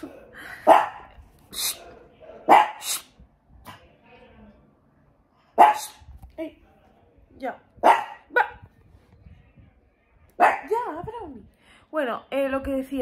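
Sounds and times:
small dog barking: 0.0 - 3.1, 5.6 - 6.0, 7.8 - 8.7, 10.4 - 10.7.

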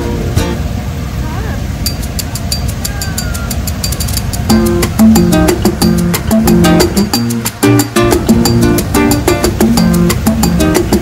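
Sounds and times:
fast even ticking: 1.8 - 11.0.

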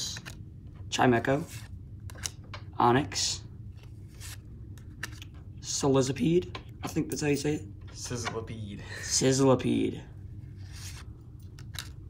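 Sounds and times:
cards sliding together: 3.8 - 5.3, 10.6 - 12.0.

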